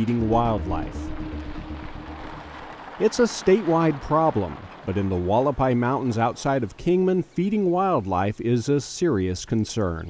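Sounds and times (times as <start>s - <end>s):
held music note: 0.0s - 4.6s
low rumble: 0.0s - 6.1s.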